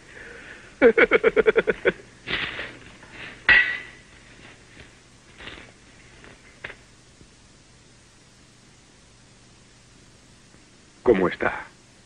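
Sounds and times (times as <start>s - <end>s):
breathy gasp: 0.0s - 0.8s
man laughing heartily: 0.8s - 2.1s
sharp metallic clank: 3.5s - 4.0s.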